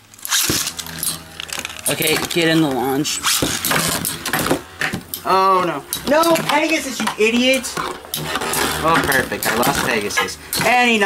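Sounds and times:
spinning tops whirring and knocking: 0.2s - 11.0s.

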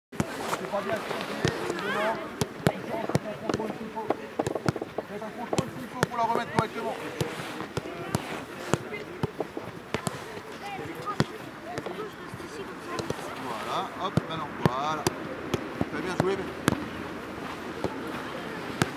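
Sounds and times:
footballs kicked thuds: 0.2s - 12.1s, 12.8s - 18.9s.

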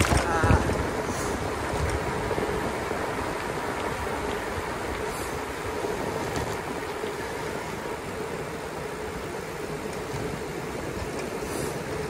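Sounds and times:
tyre noise on asphalt: 0.0s - 12.0s
wind on microphone: 0.0s - 12.0s.

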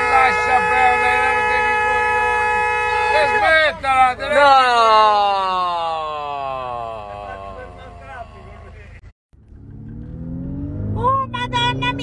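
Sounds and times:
loud steady horn-like tone: 0.0s - 3.9s, 7.0s - 9.0s.

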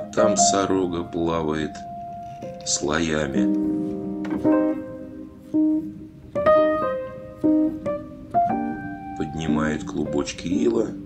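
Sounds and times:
slow piano melody: 0.0s - 11.0s.

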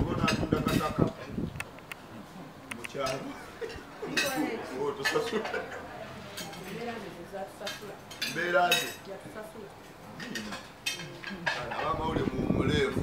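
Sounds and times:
people talking: 2.2s - 13.0s
cutlery clinking on plates: 2.8s - 6.8s, 7.6s - 9.0s, 10.2s - 12.0s.

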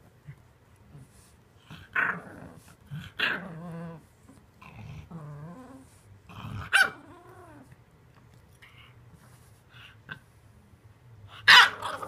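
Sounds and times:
puppy growling: 1.6s - 7.8s, 11.6s - 12.0s.

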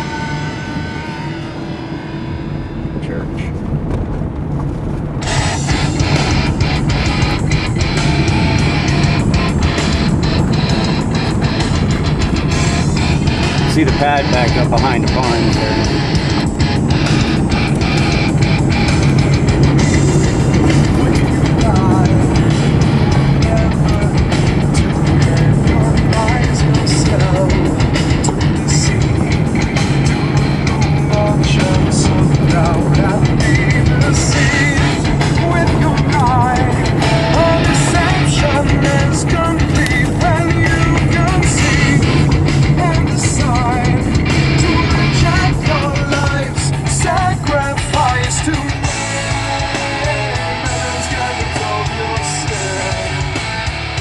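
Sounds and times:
car driving rumble: 0.0s - 54.0s
loud rock guitar music: 0.0s - 54.0s.

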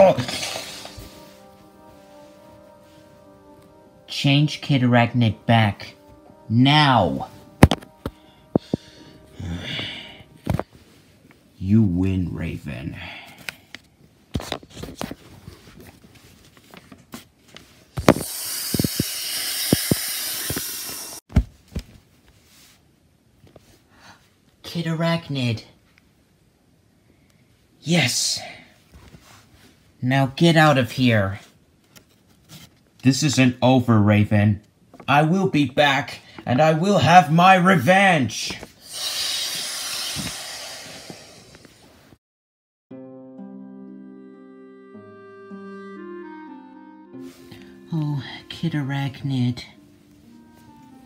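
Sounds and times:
paper and toys being handled: 0.0s - 1.5s, 13.4s - 19.0s, 31.4s - 33.0s
steady hiss: 18.0s - 21.3s, 38.4s - 42.1s.

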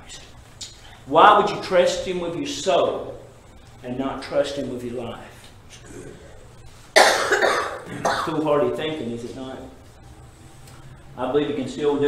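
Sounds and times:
man coughing: 7.0s - 8.5s.

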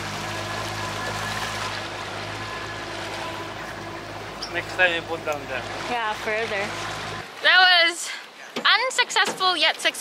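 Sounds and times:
outboard motor humming: 0.0s - 10.0s
water rushing past hull: 0.0s - 10.0s.

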